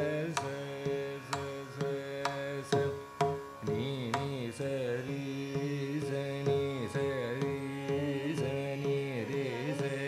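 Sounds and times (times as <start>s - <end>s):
man singing: 0.0s - 10.0s
tanpura drone: 0.0s - 10.0s
violin melody: 0.0s - 10.0s.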